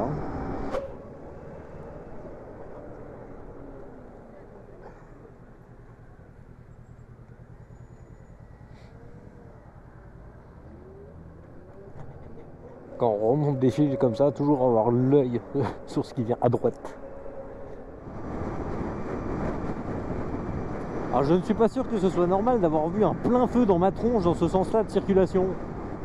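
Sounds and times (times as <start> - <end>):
road and traffic rumble: 0.0 - 26.0.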